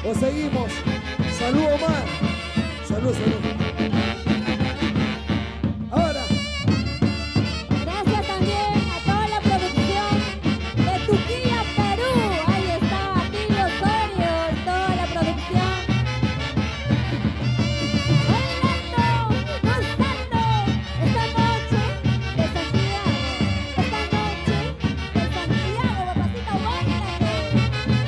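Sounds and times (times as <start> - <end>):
driving beat: 0.0 - 28.0
saxophone melody: 0.0 - 28.0.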